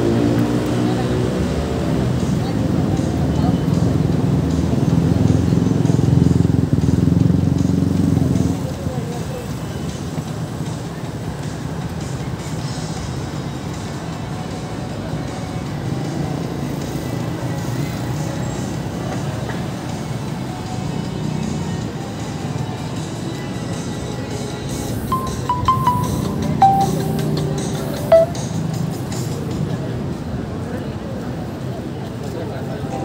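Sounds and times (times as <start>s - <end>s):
traffic: 0.0s - 33.0s
music: 0.4s - 30.2s, 32.8s - 33.0s
people talking: 0.7s - 4.2s, 32.0s - 33.0s.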